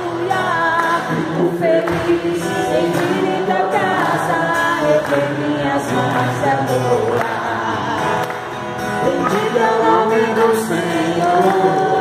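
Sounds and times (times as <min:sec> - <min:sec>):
man singing into a microphone: 0:00.0 - 0:12.0
children singing together: 0:09.1 - 0:12.0.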